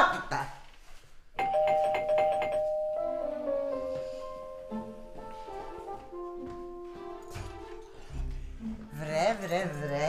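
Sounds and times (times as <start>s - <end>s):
two-tone doorbell ringing: 1.4s - 5.2s.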